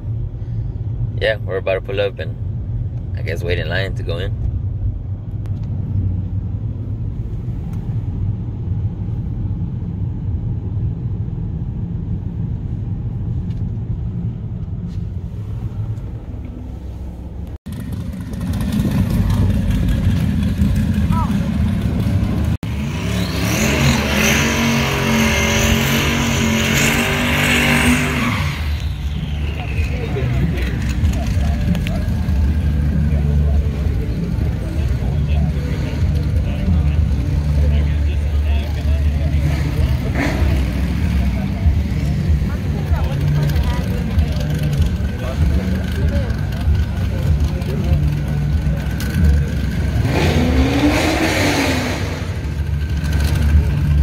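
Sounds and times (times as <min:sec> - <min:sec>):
car driving heard from cabin: 0:00.0 - 0:54.0
race car engine running hard: 0:15.3 - 0:54.0.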